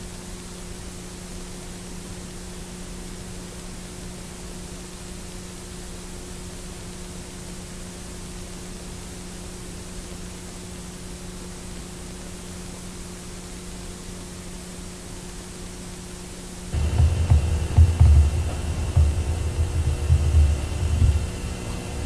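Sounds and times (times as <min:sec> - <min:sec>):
low mains hum: 0:00.0 - 0:22.0
tape hiss: 0:00.0 - 0:22.0
uneven low rumble: 0:16.7 - 0:22.0.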